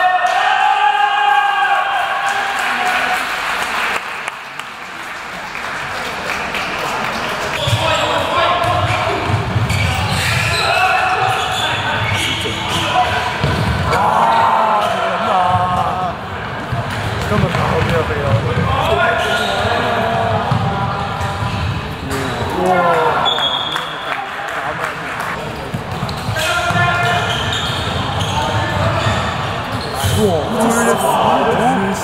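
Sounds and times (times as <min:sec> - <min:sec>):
players and spectators shouting: 0:00.0 - 0:03.0, 0:10.0 - 0:16.3, 0:30.0 - 0:32.0
handball bouncing on court floor: 0:13.3 - 0:13.9, 0:20.2 - 0:21.9.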